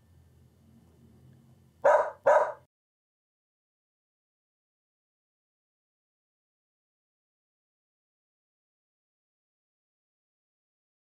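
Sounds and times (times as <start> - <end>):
dog barking: 1.8 - 2.7.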